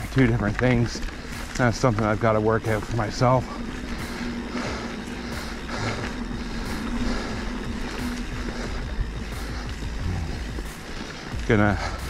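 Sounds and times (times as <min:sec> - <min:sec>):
bike rattles and knocks: 0:00.0 - 0:12.0
bike tyre noise on dirt: 0:00.0 - 0:12.0
steady low hum: 0:00.0 - 0:12.0
wind buffeting microphone: 0:00.0 - 0:12.0.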